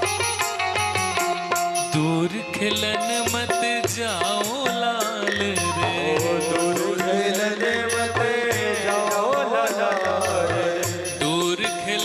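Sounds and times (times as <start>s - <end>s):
instrumental accompaniment: 0.0s - 12.0s
man singing: 1.8s - 12.0s.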